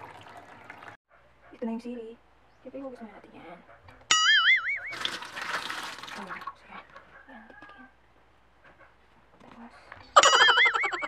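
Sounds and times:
tap water running into basin: 0.0 - 1.0, 4.9 - 6.6.

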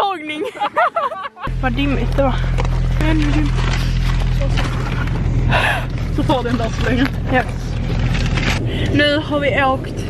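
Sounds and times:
low drone: 1.5 - 10.0
person gasping or laughing: 5.5 - 5.9.

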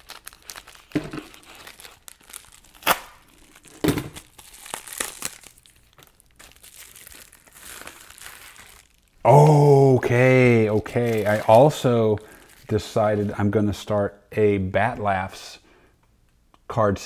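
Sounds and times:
paper packaging crinkling: 0.0 - 9.2, 10.3 - 13.5.

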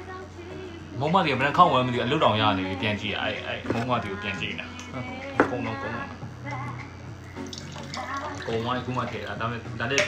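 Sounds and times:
liquid pouring into a glass: 7.4 - 8.9.

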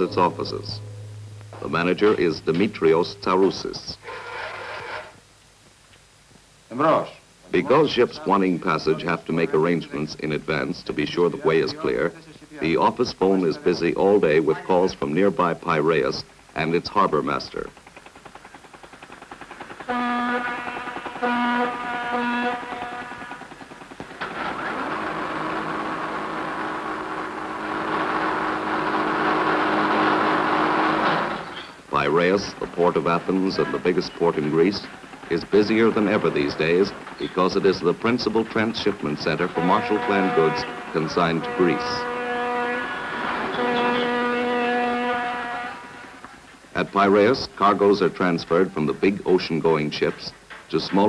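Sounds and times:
ship's horn blasts: 0.0 - 4.3, 19.9 - 23.4, 24.4 - 31.4, 39.1 - 46.3.

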